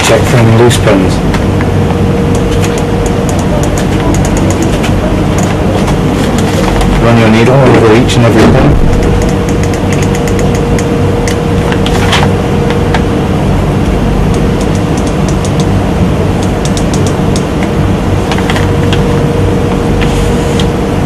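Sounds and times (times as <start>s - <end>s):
constant mid-pitched tone: 0.0s - 21.0s
steady hum and hiss: 0.0s - 21.0s.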